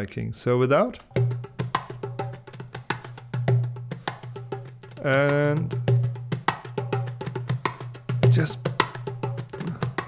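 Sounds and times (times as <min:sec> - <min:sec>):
rapid hand percussion strikes: 0:01.1 - 0:10.0.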